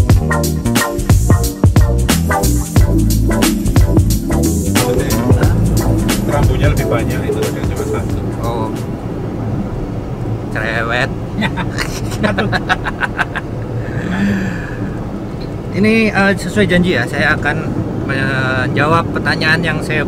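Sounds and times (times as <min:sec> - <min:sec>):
car road and engine noise: 0:02.2 - 0:20.0
men laughing and talking: 0:04.6 - 0:08.9, 0:11.3 - 0:14.4.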